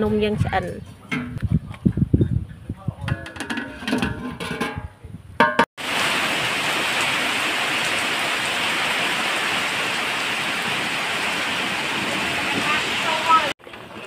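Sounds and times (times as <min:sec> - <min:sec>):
voice: 0:00.0 - 0:00.8, 0:02.6 - 0:03.5, 0:12.0 - 0:13.6
heavy rain: 0:05.8 - 0:13.6.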